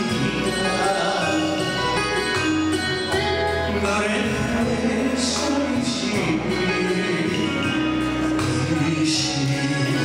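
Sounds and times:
person singing: 0.0s - 10.0s
plucked strings: 0.0s - 10.0s
sustained instrumental notes: 0.0s - 10.0s.

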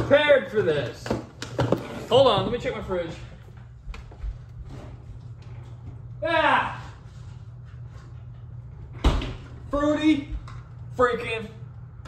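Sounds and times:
low room hum: 0.0s - 12.0s
soft footsteps: 1.8s - 6.1s.

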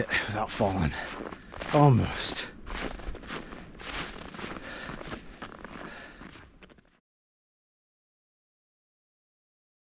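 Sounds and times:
footsteps crunching in snow: 0.0s - 7.0s.

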